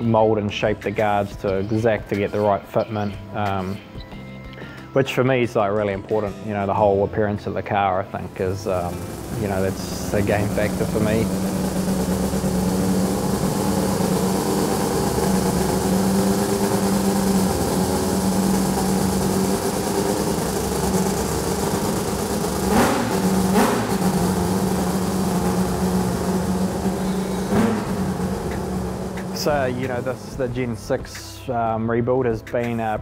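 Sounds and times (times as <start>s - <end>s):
rotary engine idling: 8.3s - 30.9s
sharp engine bursts: 8.3s - 30.9s.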